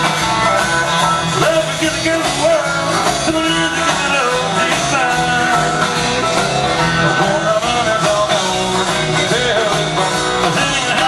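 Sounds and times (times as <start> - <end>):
electric guitars: 0.0 - 11.0
live country band playing: 0.0 - 11.0.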